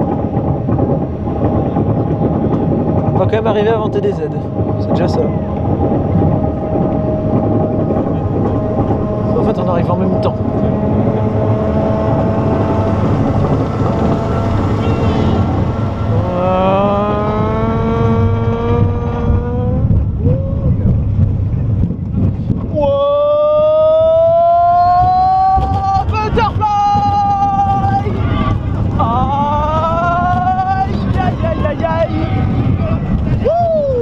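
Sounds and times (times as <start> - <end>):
roller coaster rumble: 0.0 - 34.0
wind noise: 0.0 - 34.0
rising whines: 0.4 - 26.2.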